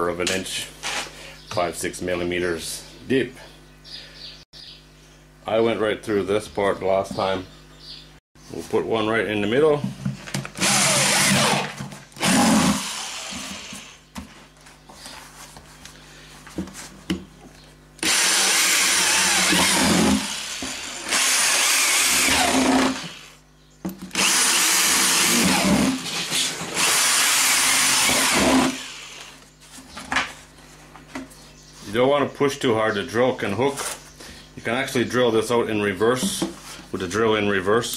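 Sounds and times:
power drill boring through plastic: 0:10.6 - 0:14.0, 0:18.0 - 0:23.4, 0:24.1 - 0:29.4.

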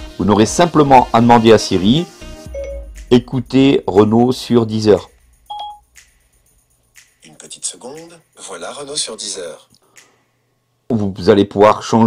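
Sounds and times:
short electronic beep: 0:02.5 - 0:02.9, 0:05.4 - 0:05.9.

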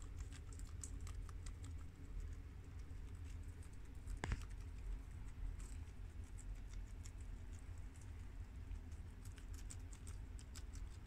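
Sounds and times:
guinea pigs chewing lettuce: 0:00.0 - 0:11.0
low steady hum: 0:00.0 - 0:11.0.

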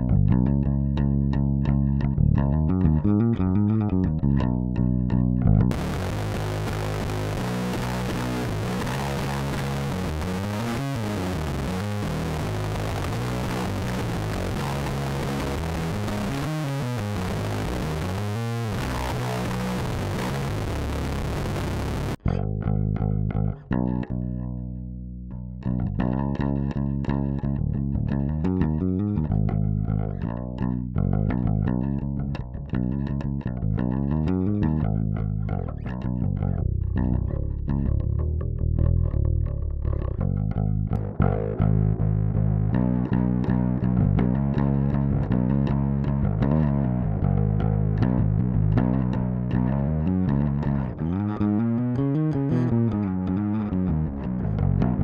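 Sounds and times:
electric bass notes and slides: 0:00.0 - 0:55.0.

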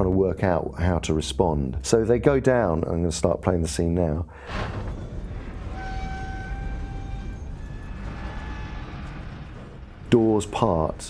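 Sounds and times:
low rumble: 0:04.4 - 0:11.0.

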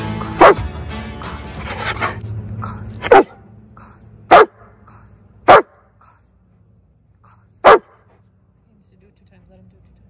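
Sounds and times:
dog barking: 0:00.4 - 0:00.7, 0:03.0 - 0:03.4, 0:04.3 - 0:04.7, 0:05.5 - 0:05.8, 0:07.6 - 0:08.0.

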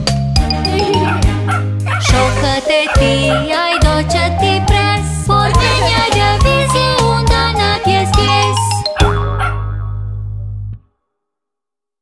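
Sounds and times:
children's song music: 0:00.0 - 0:09.8.

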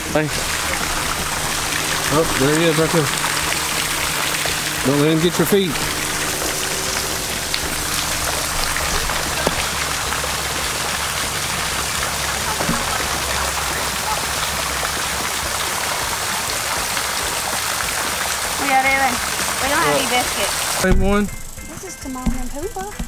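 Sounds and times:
water pouring into a pond: 0:00.0 - 0:21.3.

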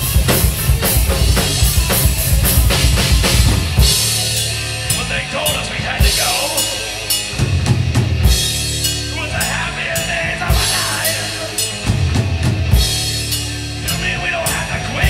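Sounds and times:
drum kit: 0:00.0 - 0:15.0
electric guitar: 0:00.0 - 0:15.0
rock band playing: 0:00.0 - 0:15.0.

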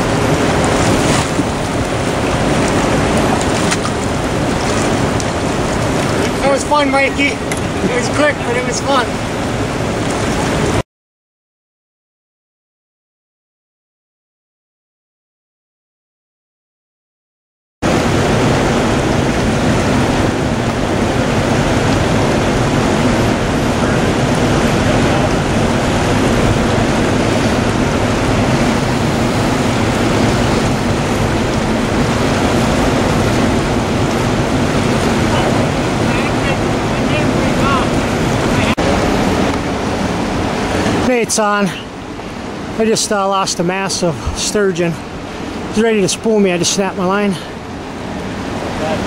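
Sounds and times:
fast-flowing river rushing: 0:00.0 - 0:10.8, 0:17.8 - 0:49.0
wind buffeting microphone: 0:00.0 - 0:10.8, 0:17.8 - 0:43.0.

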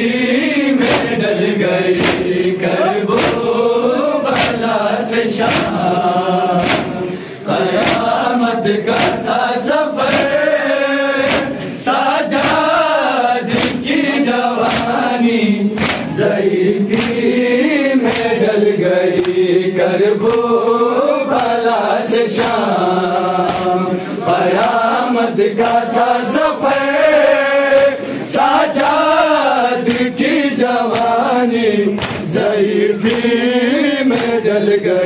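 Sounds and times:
men chanting together: 0:00.0 - 0:35.0
chest-beating slaps: 0:00.8 - 0:03.6, 0:04.2 - 0:10.5, 0:11.1 - 0:12.8, 0:13.4 - 0:15.2, 0:15.8 - 0:17.4, 0:18.0 - 0:18.5, 0:19.1 - 0:19.5, 0:20.2 - 0:20.6, 0:22.3 - 0:22.8, 0:23.4 - 0:24.9, 0:25.6 - 0:26.9, 0:27.7 - 0:29.2, 0:29.8 - 0:34.5.

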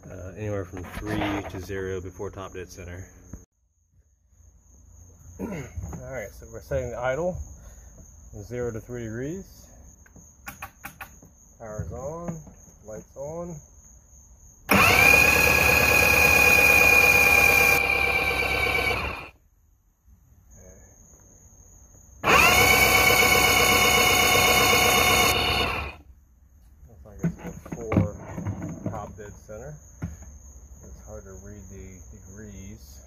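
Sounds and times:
outboard starter motor cranking: 0:14.7 - 0:19.3, 0:22.2 - 0:26.0.

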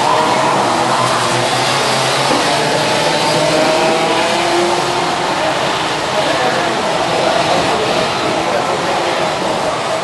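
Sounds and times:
kart engines whining: 0:00.0 - 0:10.0
steady rush of noise: 0:00.0 - 0:10.0.

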